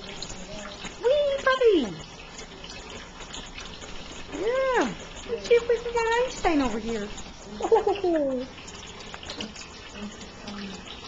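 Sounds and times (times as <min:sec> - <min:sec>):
tap water running into steel sink: 0:00.0 - 0:11.0.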